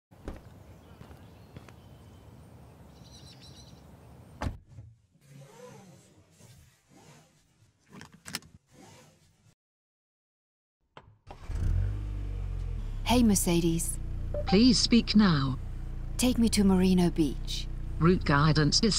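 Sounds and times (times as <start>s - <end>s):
car engine starting and humming: 11.3s - 18.9s.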